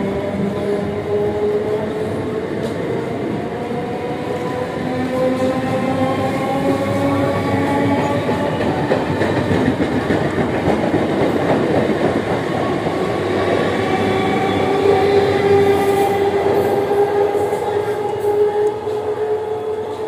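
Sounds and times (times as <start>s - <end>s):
train rumbling past on rails: 0.0s - 20.0s.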